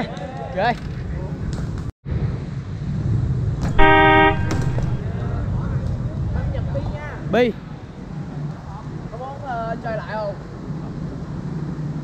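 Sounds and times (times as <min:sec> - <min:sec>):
street traffic rumble: 0:00.1 - 0:12.0
vehicle horn: 0:03.7 - 0:05.0.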